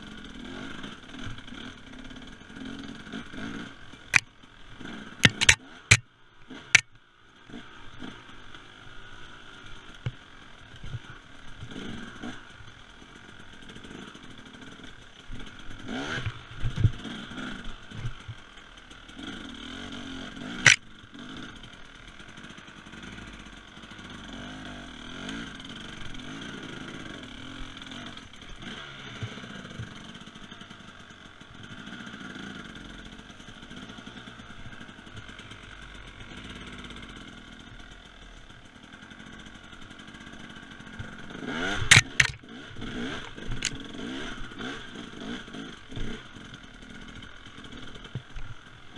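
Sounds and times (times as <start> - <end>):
two-stroke motorcycle engine: 0.0 - 48.9
knocks and clatter from bike: 0.5 - 1.7, 2.6 - 7.1, 9.9 - 12.7, 13.5 - 23.6, 24.4 - 32.8, 38.5 - 48.7.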